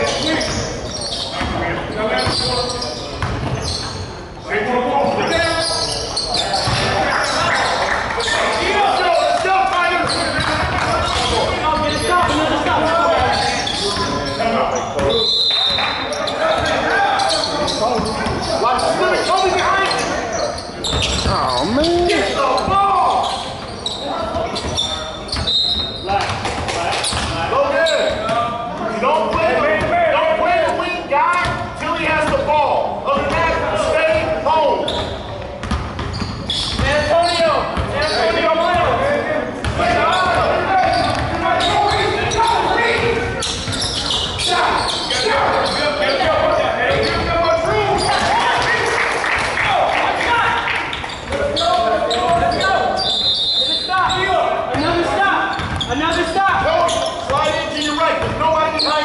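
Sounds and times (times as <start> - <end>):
basketball bouncing on hardwood: 3.2 - 3.6, 35.6 - 36.8, 55.6 - 55.8
people shouting: 21.2 - 22.4.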